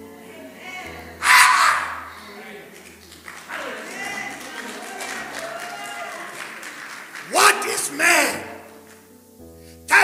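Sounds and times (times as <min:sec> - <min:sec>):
man shouting through microphone: 0:01.2 - 0:02.1, 0:07.3 - 0:08.6.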